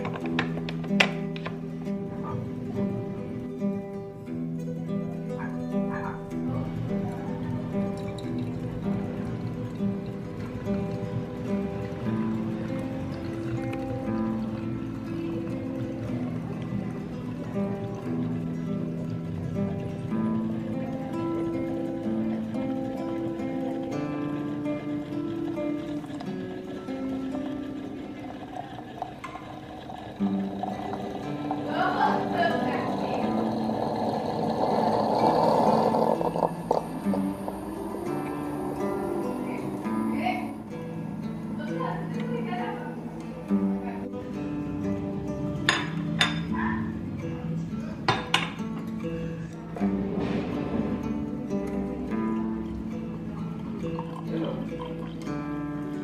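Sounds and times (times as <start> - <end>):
background music: 0.0 - 56.0
espresso maker hissing: 21.7 - 42.3.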